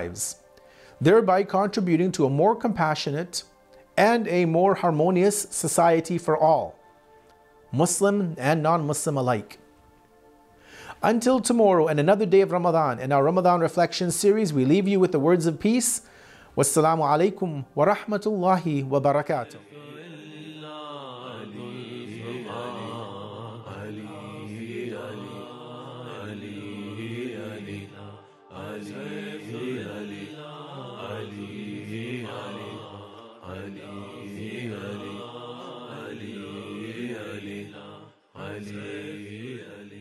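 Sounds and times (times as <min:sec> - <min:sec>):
person chanting: 0:00.0 - 0:06.8, 0:07.7 - 0:09.6, 0:10.9 - 0:40.0.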